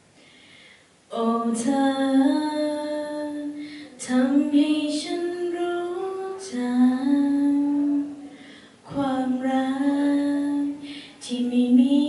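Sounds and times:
woman singing a ballad: 1.1s - 12.0s.

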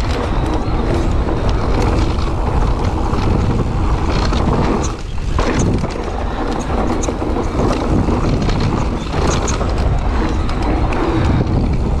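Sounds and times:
bike rattling: 0.0s - 12.0s
bike tyres rolling on dirt: 0.0s - 12.0s
wind buffeting microphone: 0.0s - 12.0s.

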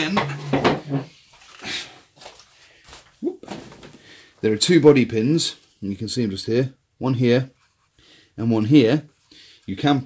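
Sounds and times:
man talking: 4.4s - 7.6s, 8.4s - 9.1s, 9.7s - 10.0s.

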